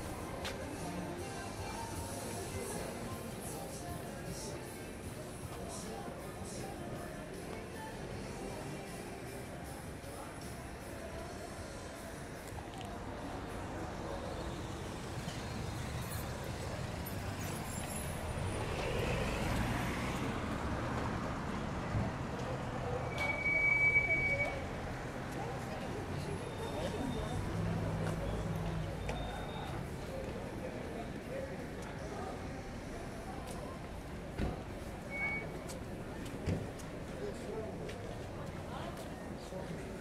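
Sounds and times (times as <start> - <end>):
road traffic rumble: 0.0 - 40.0
car passing: 14.1 - 22.2
short high electronic beep: 23.1 - 24.6.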